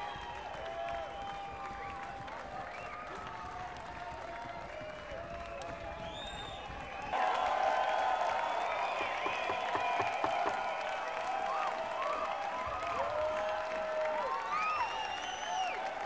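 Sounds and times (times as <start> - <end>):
audience applauding: 0.0 - 16.0
crowd cheering: 0.0 - 16.0.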